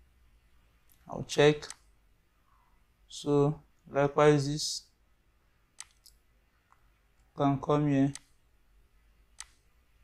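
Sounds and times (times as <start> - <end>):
computer mouse click: 5.8 - 6.8, 8.1 - 8.4, 9.3 - 9.7.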